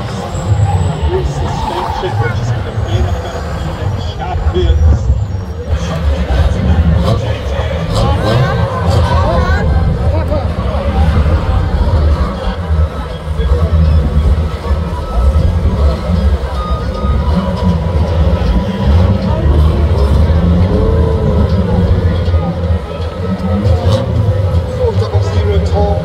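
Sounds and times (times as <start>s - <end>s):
indistinct voices: 0.0s - 26.0s
stock car engines idling: 0.0s - 26.0s.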